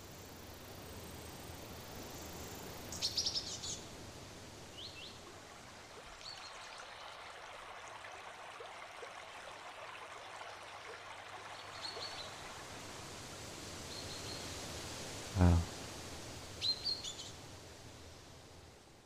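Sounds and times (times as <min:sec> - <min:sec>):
outdoor ambient hiss: 0:00.0 - 0:19.0.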